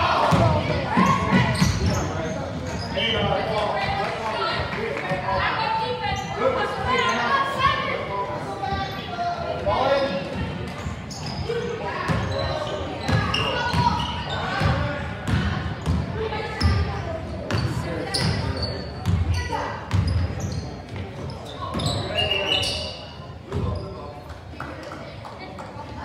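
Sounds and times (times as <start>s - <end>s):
voices of players and spectators: 0.0s - 26.0s.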